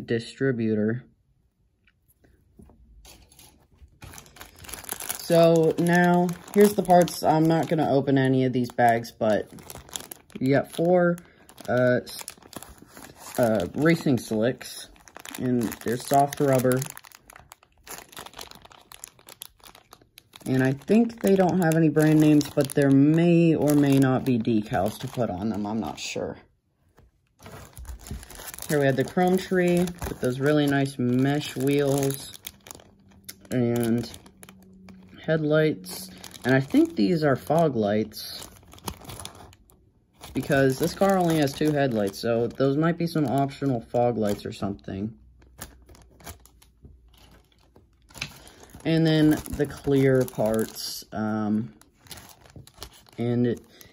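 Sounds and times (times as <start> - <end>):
plastic bag crinkling: 2.5 - 53.9.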